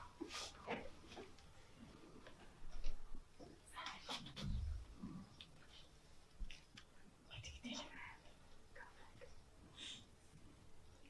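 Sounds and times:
people whispering: 3.6 - 5.9, 7.2 - 10.1.

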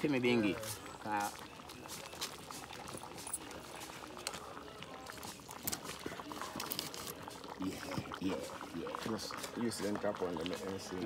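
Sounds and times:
soup bubbling at a boil: 0.0 - 11.0
fire clicks and pops: 1.6 - 8.1.

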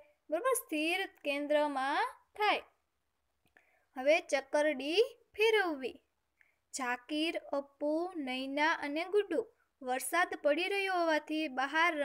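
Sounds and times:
woman speaking: 0.0 - 2.8, 4.0 - 6.1, 6.8 - 12.0.

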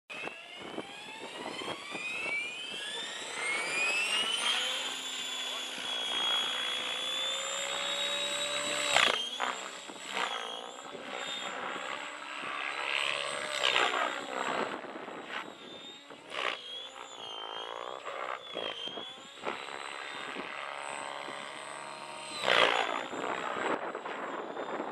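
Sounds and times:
model helicopter rotor whining: 0.1 - 24.9.

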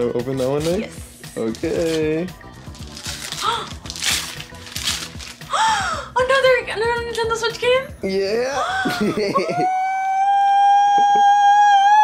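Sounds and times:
woman squealing: 8.6 - 12.0.

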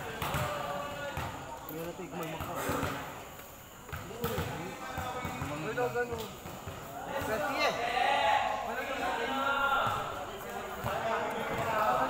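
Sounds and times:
volleyball bouncing on concrete: 0.0 - 7.6, 9.8 - 12.0
players' voices and calls: 0.0 - 12.0.

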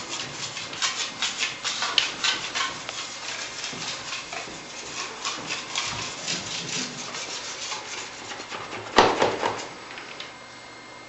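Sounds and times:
knife rubbing over plaster: 0.0 - 8.9.

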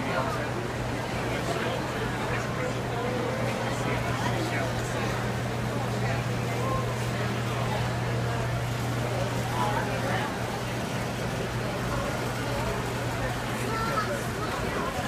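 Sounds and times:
crowd chatter: 0.0 - 15.0.

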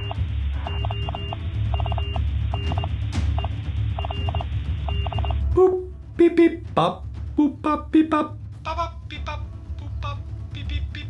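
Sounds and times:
phone ringtone beeps: 0.0 - 5.5
low bass hum: 0.0 - 11.0.

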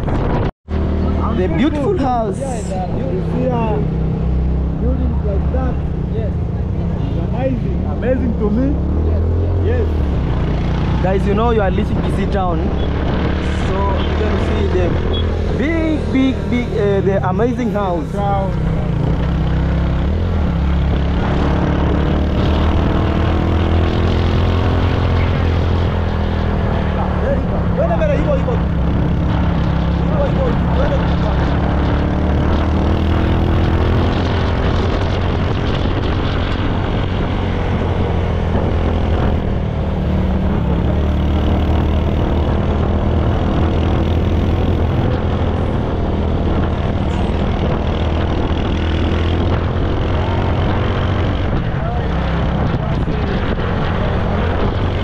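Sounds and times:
motorcycle engine rumble: 0.0 - 55.0
wind and road noise: 0.0 - 55.0.

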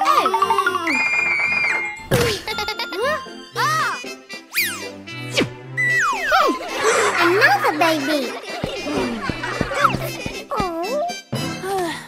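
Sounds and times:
children's background music: 0.0 - 12.0.

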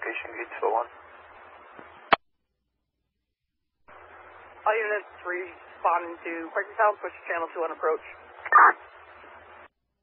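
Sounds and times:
radio static hiss: 0.0 - 2.2, 3.9 - 9.7.

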